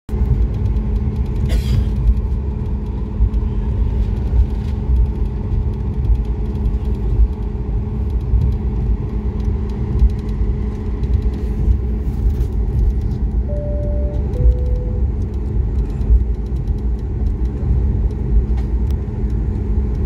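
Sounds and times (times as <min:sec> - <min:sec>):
jet engines rumbling in cabin: 0:00.1 - 0:20.0
two-note cabin chime: 0:13.5 - 0:15.1.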